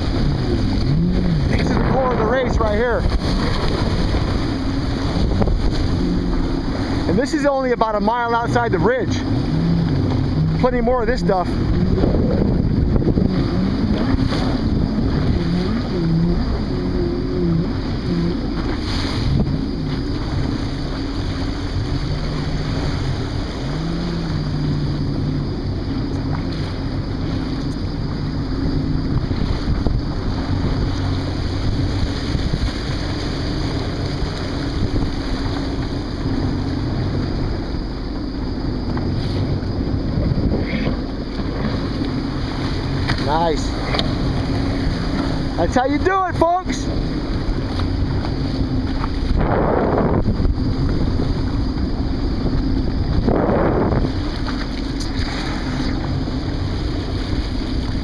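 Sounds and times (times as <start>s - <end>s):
choppy waves splashing: 0.0s - 58.0s
jet ski engine running: 0.0s - 58.0s
wind buffeting microphone: 0.0s - 58.0s.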